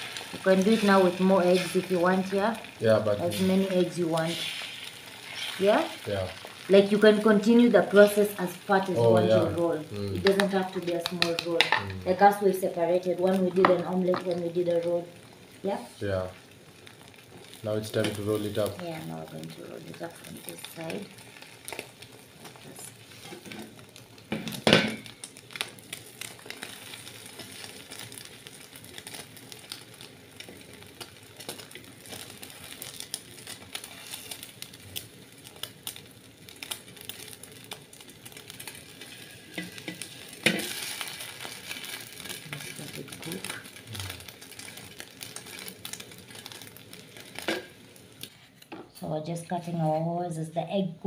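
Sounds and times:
egg sizzling in a hot pan: 0:00.0 - 0:50.8
spatula scraping and knocking pan: 0:10.2 - 0:11.9.

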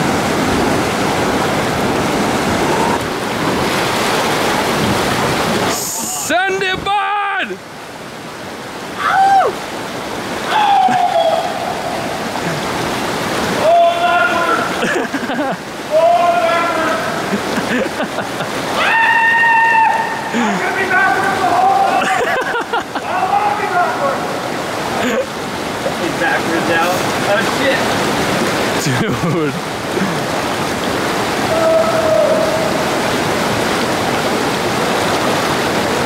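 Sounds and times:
water rushing through pipe: 0:00.0 - 0:22.2, 0:23.0 - 0:36.0
people whooping yells: 0:09.0 - 0:09.6, 0:10.4 - 0:12.0, 0:13.6 - 0:14.7, 0:18.8 - 0:20.3, 0:31.5 - 0:32.8.

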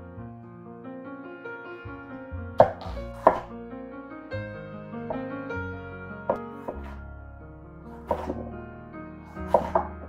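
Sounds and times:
background music: 0:00.0 - 0:10.0
knife chopping on wooden board: 0:02.6 - 0:03.5, 0:06.3 - 0:07.0, 0:08.1 - 0:08.4, 0:09.4 - 0:10.0.

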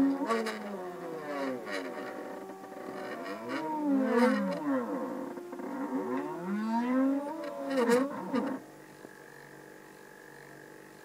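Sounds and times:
stepper motors whining: 0:00.0 - 0:08.7.

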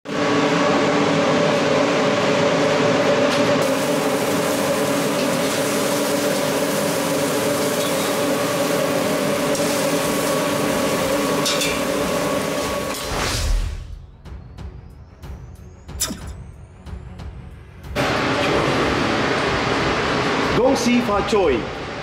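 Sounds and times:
ventilation droning hum: 0:17.3 - 0:22.0.

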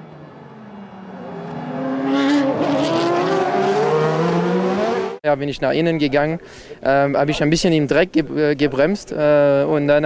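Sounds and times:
racing car engines accelerating: 0:00.0 - 0:05.2.

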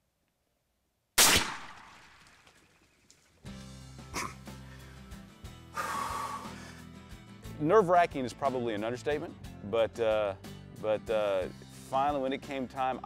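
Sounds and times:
loud handgun shot ringing: 0:01.2 - 0:02.2
music with low drone: 0:03.5 - 0:12.9.

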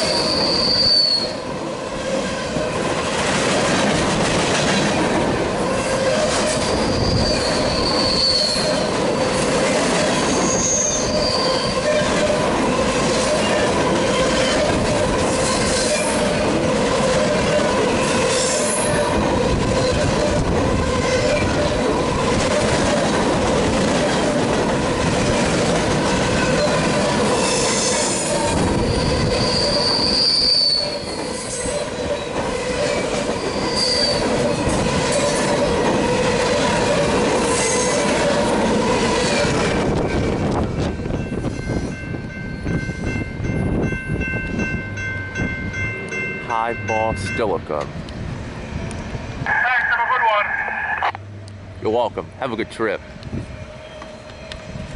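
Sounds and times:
high-pitched wheel squeals: 0:00.0 - 0:01.4, 0:06.7 - 0:09.5, 0:10.3 - 0:12.2, 0:28.8 - 0:31.8, 0:33.3 - 0:34.4, 0:53.3 - 0:54.9
freight train wheels rumbling on rail: 0:00.0 - 0:54.9.

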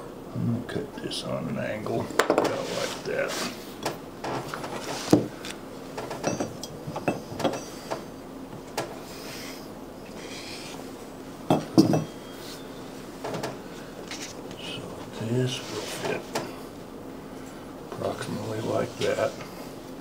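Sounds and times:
metal tools clinking and knocking: 0:06.1 - 0:07.7, 0:11.5 - 0:12.2.

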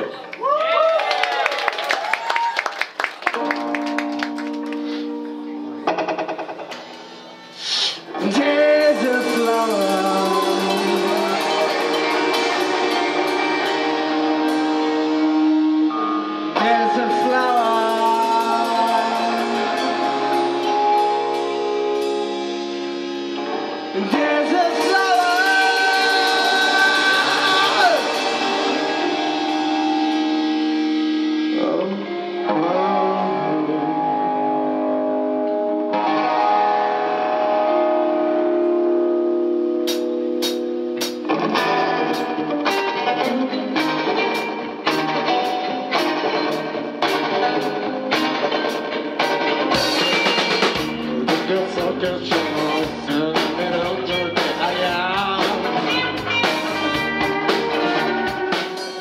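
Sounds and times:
electric guitars playing: 0:02.9 - 0:59.0.

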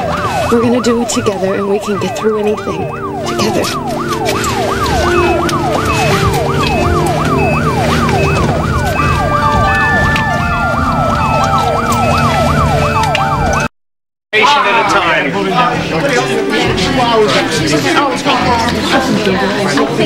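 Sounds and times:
ambulance siren wailing: 0:00.0 - 0:13.7, 0:14.4 - 0:20.0
low vehicle rumble: 0:00.0 - 0:13.7.

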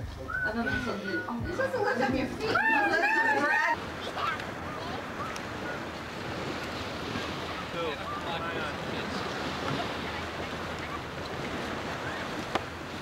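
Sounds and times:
faint voices: 0:00.0 - 0:13.0
surf washing: 0:00.0 - 0:13.0
wind buffeting microphone: 0:00.0 - 0:13.0.

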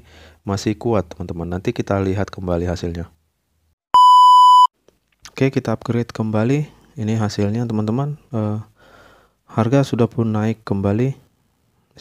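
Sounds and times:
electronic beep: 0:04.0 - 0:04.7.

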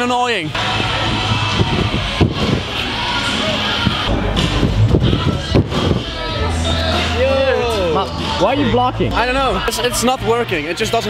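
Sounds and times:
busy gym hall noise: 0:00.0 - 0:11.0.

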